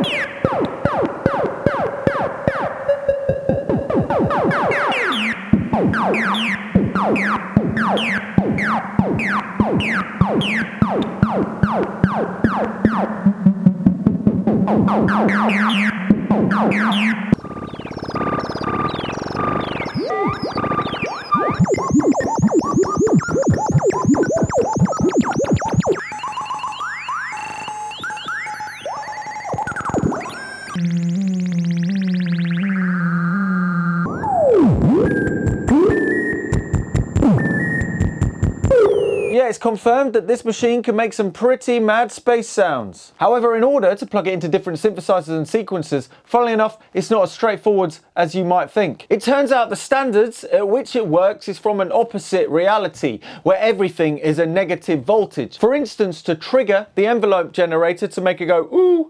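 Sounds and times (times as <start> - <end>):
synthesizer drone: 0.0 - 39.3
beeping pulsing synth tones: 0.0 - 39.4
synthesizer falling pitch sweeps: 0.0 - 39.4
high whistles: 34.1 - 39.4.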